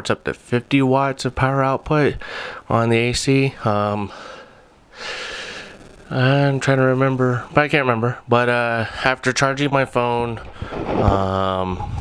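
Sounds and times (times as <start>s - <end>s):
man breathing in: 2.2s - 2.7s, 4.1s - 5.9s, 10.5s - 11.0s.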